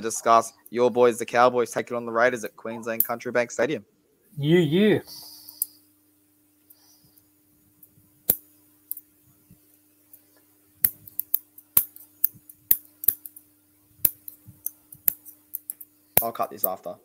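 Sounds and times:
faint electrical hum: 0:00.0 - 0:17.0
sharp clicks of computer controls: 0:10.8 - 0:13.4.

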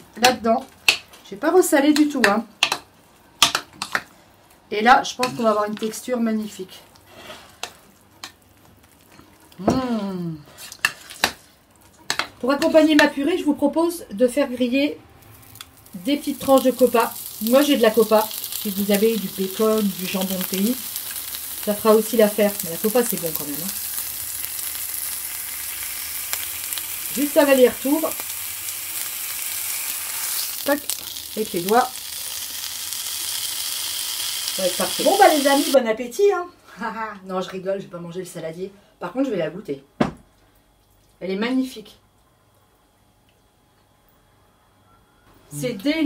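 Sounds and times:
woman humming: 0:09.6 - 0:10.4
meat sizzling in frying pan: 0:15.3 - 0:35.8.

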